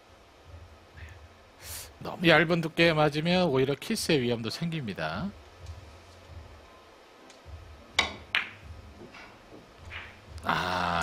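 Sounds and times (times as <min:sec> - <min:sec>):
cue tip clicking ball: 0:08.0 - 0:09.2
billiard balls clicking: 0:08.0 - 0:10.2.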